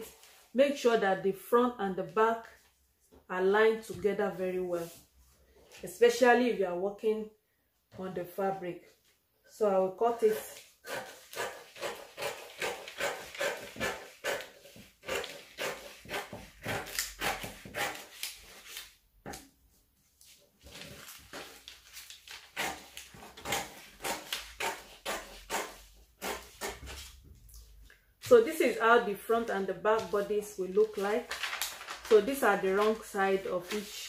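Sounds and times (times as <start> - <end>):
scissors snipping paper: 10.3 - 18.9, 21.1 - 27.1.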